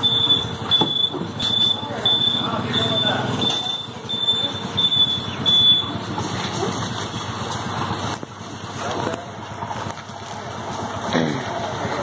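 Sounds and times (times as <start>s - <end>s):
high electronic beeps: 0.0s - 5.9s.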